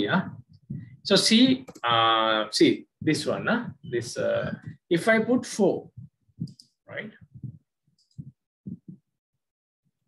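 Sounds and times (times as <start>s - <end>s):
soft low thumps: 0.0s - 9.2s.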